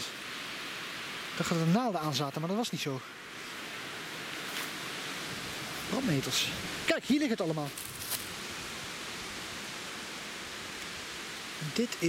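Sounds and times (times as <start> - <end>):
steady background hiss: 0.0 - 12.0
brief rustle: 7.7 - 8.3.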